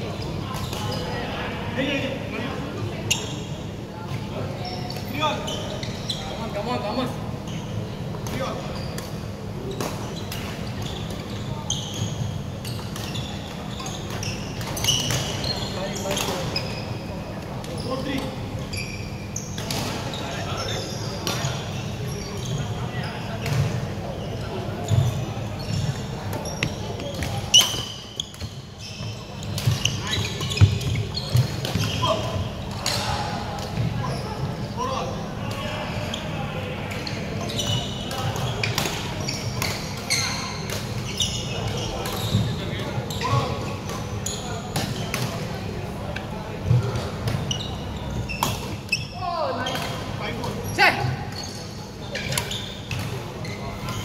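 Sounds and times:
shoe squeaks on wooden floor: 0:04.6 - 0:06.5, 0:09.7 - 0:17.1, 0:17.7 - 0:33.0, 0:34.0 - 0:35.0, 0:37.0 - 0:45.3, 0:46.8 - 0:49.9, 0:50.7 - 0:54.0.

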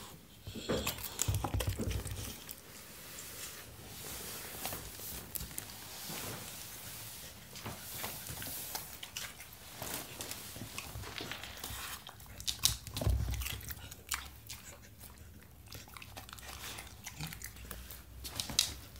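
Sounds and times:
dog crunching bell pepper: 0:00.5 - 0:02.6, 0:10.8 - 0:18.9.

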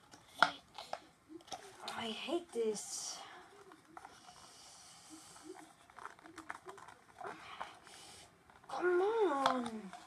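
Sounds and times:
toy packaging rustling and clicking: 0:00.0 - 0:10.0
person breathing: 0:03.2 - 0:05.8, 0:07.2 - 0:08.5.

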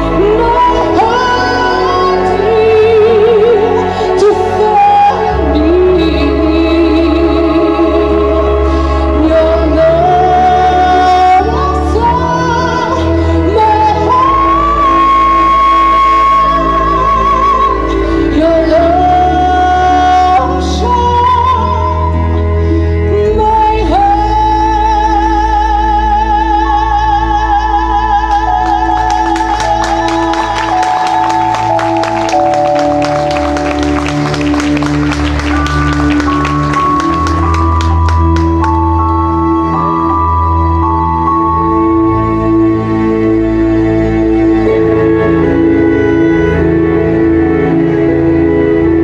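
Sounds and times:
woman singing into a microphone: 0:00.0 - 0:32.5
musical accompaniment: 0:00.0 - 0:49.0
steady bass line: 0:00.0 - 0:49.0
sustained chords: 0:25.9 - 0:49.0.

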